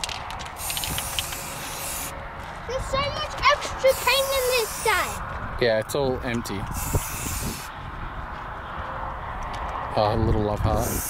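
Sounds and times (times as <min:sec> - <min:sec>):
spray-paint can hissing: 0:00.6 - 0:02.1, 0:03.9 - 0:05.2, 0:06.7 - 0:07.7, 0:10.8 - 0:11.0.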